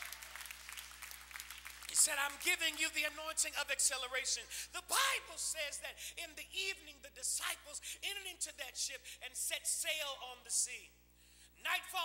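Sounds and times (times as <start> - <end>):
congregation clapping: 0.0 - 3.3.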